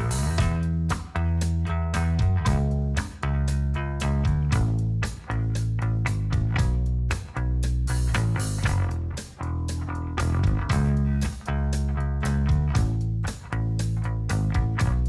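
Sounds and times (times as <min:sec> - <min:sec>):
drums: 0:00.0 - 0:15.0
electric bass riff: 0:00.0 - 0:15.0
punk rock band playing: 0:00.0 - 0:15.0.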